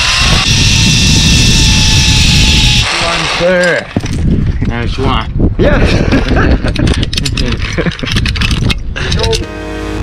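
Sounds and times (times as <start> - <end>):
wind rumble on microphone: 0.0 - 9.5
music: 9.4 - 10.0.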